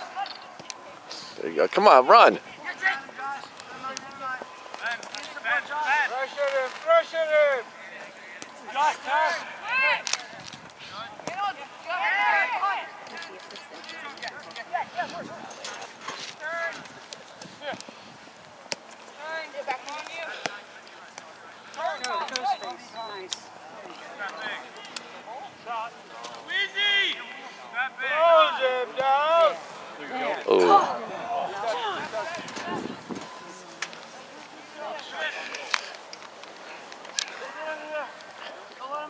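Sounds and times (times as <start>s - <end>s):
distant shouts and calls: 1.9s - 13.2s, 19.1s - 33.4s.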